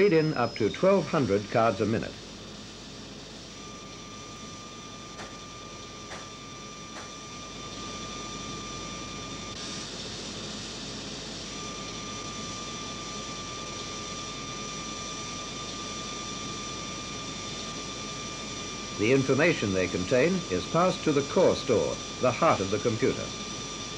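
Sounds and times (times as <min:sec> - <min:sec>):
card reader mechanical whir: 0:00.0 - 0:10.0, 0:11.4 - 0:23.9
thin steady whine: 0:00.0 - 0:23.9.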